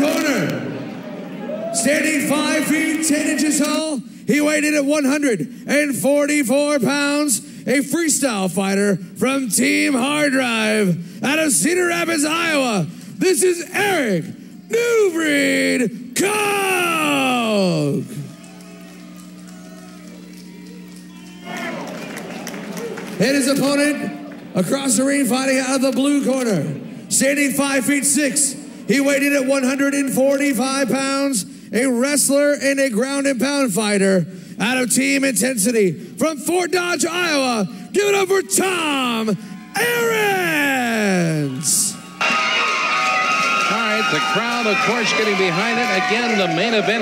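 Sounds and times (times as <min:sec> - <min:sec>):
crowd cheering: 0:00.0 - 0:04.0, 0:14.7 - 0:31.2, 0:38.6 - 0:47.0
crowd noise: 0:00.0 - 0:04.9, 0:09.6 - 0:31.3, 0:38.5 - 0:47.0
ring announcer calling out: 0:01.4 - 0:47.0.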